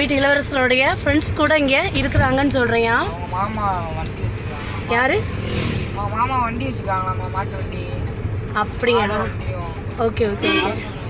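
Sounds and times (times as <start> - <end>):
car engine rumble: 0.0 - 11.0
tyres on road: 0.0 - 11.0.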